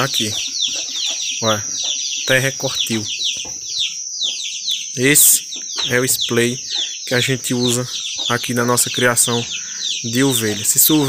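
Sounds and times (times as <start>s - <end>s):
chicks peeping: 0.0s - 11.0s
constant high-pitched tone: 0.0s - 11.0s.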